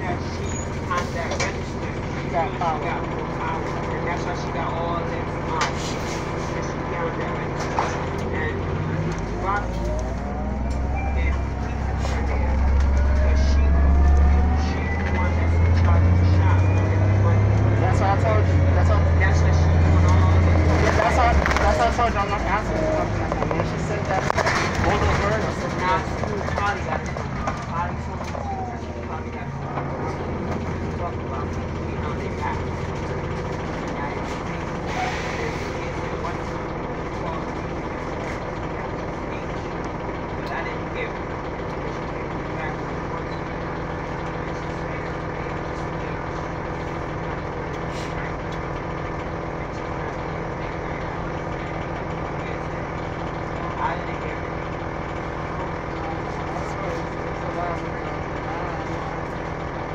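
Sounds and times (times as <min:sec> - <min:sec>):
bus drivetrain drone: 0:00.0 - 0:59.9
strong low hum: 0:00.0 - 0:59.9.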